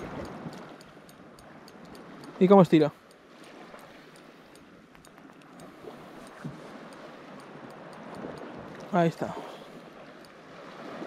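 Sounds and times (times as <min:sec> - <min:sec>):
faint light ticking: 0:00.0 - 0:10.4
water lapping against stone wall: 0:00.0 - 0:11.0.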